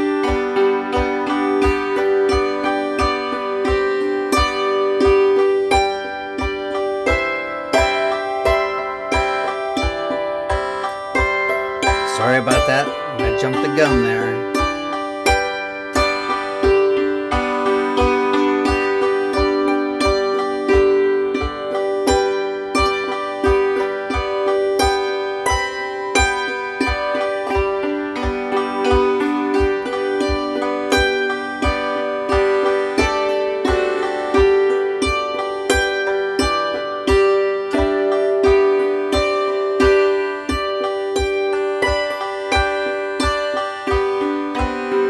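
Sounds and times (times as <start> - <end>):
hammered dulcimer chords: 0.0 - 45.0.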